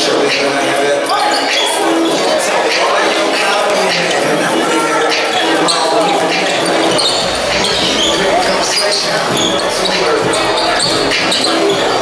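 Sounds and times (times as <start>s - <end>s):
people calling out: 0.0s - 12.0s.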